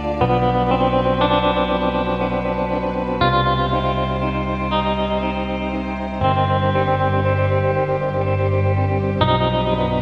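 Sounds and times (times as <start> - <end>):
guitar with echo playing chords: 0.0 - 10.0
steady bass: 0.0 - 10.0.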